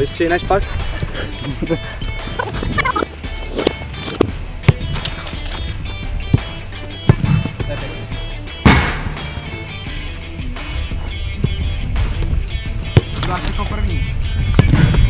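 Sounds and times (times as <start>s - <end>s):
music with steady beat: 0.0s - 15.0s
football kick thuds: 3.6s - 5.0s, 6.3s - 7.6s, 8.6s - 9.4s, 11.4s - 13.4s, 14.4s - 15.0s.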